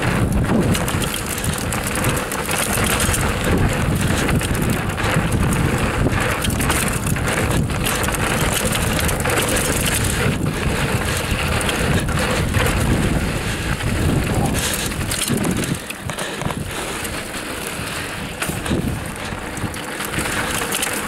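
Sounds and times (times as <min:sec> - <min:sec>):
bike knocks and rattles: 0:00.0 - 0:21.0
tyre noise on dirt: 0:00.0 - 0:21.0
wind rush on microphone: 0:00.0 - 0:21.0.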